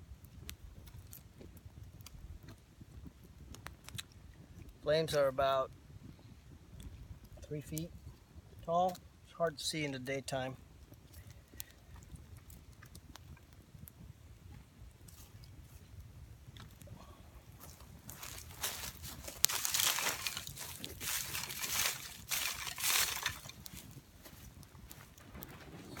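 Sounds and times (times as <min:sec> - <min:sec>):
twig fire crackling and hissing: 0:00.0 - 0:26.0.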